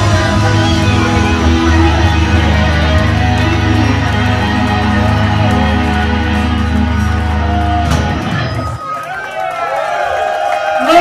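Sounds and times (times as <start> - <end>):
rock band final hit: 0.0 - 8.8
audience cheering and shouting: 0.0 - 11.0.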